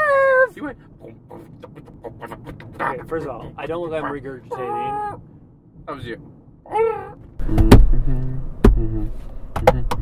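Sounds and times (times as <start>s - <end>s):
car road noise rumble: 0.0s - 10.0s
man talking: 2.8s - 5.0s.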